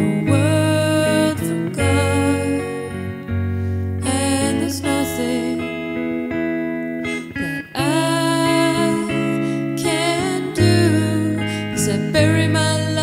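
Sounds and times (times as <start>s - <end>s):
person singing long notes: 0.0s - 3.3s, 4.0s - 6.2s, 7.7s - 13.0s
electric guitar chords: 0.0s - 13.0s.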